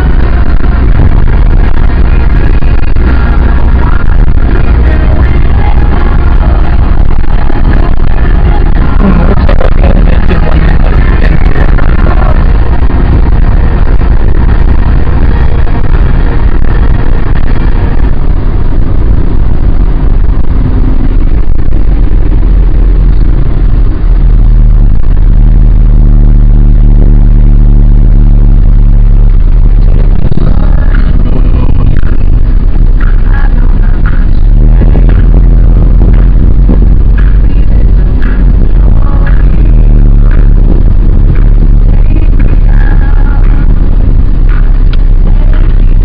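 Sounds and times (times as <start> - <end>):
car engine and road noise: 0.0 - 46.0
music: 0.0 - 46.0.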